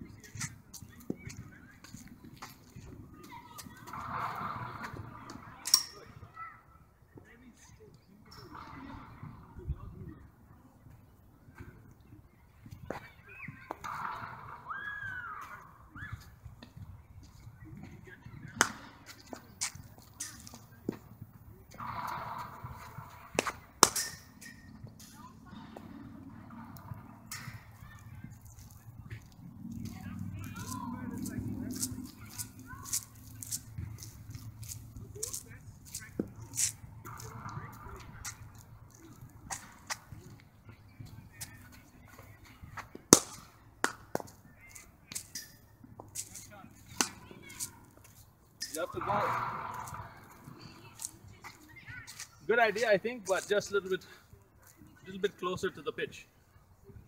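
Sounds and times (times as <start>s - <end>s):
distant voices: 0.0s - 57.0s
cricket ball striking bat: 21.8s - 24.2s, 43.0s - 44.3s.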